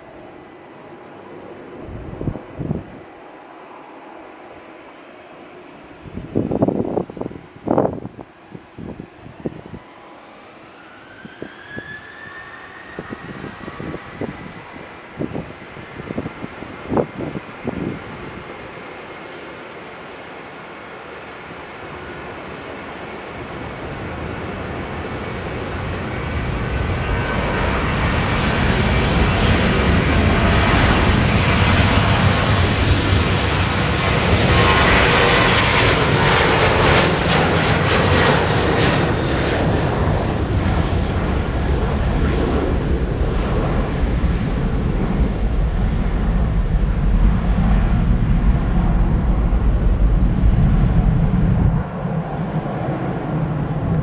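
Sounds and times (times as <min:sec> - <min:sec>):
wind buffeting microphone: 0:01.2 - 0:03.2, 0:05.9 - 0:09.9, 0:11.1 - 0:19.0, 0:23.4 - 0:54.0
jet engines spooling up: 0:09.2 - 0:17.0.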